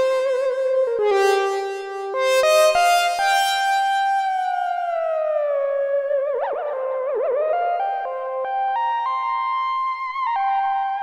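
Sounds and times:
buzzy synthesizer note gliding down: 0.0 - 5.8.

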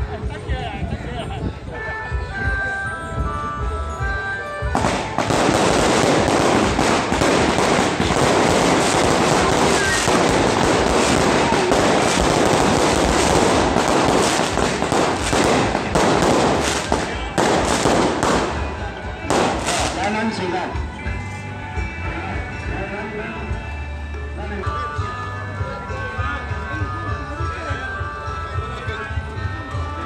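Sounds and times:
firecrackers crackling: 4.7 - 20.6.

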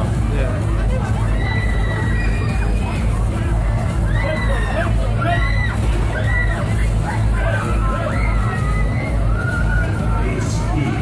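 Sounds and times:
crowd chatter: 0.0 - 11.0
loud music with strong bass: 0.0 - 11.0.

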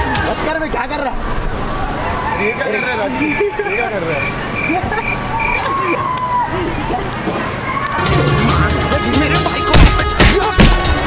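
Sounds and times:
people shouting and laughing: 0.0 - 11.0.

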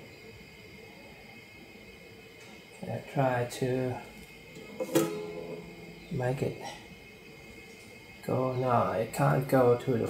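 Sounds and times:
guitar string pluck: 4.6 - 6.3.

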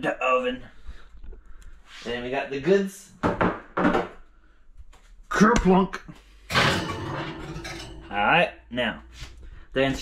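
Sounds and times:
glass dish scraping on metal rack: 6.5 - 8.2.

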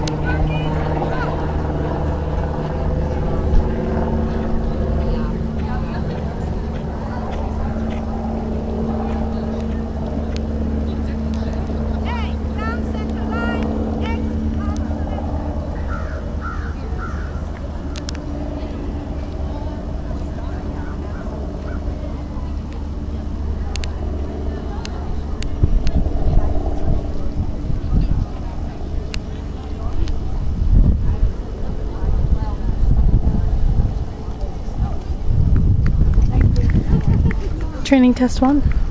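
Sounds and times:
low mechanical drone: 0.0 - 38.9
wind gusts on microphone: 23.0 - 38.9.

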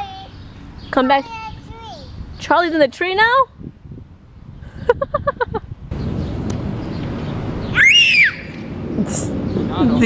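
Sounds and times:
outdoor background noise: 0.0 - 10.0
girl giggling: 4.7 - 5.7
high rising and falling squeal: 7.6 - 8.7.

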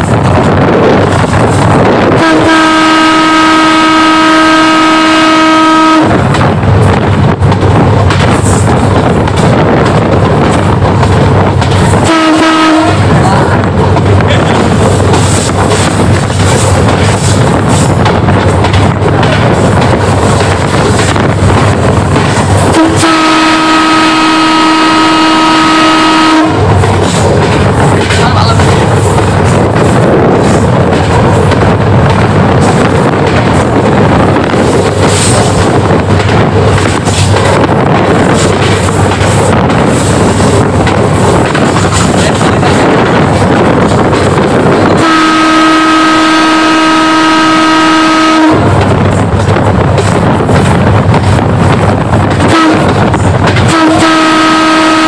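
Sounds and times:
moving train rumbling: 0.0 - 55.0
train horn blast: 1.9 - 6.3, 12.0 - 13.2, 22.7 - 26.8, 44.6 - 48.8, 52.4 - 53.0, 53.6 - 55.0.

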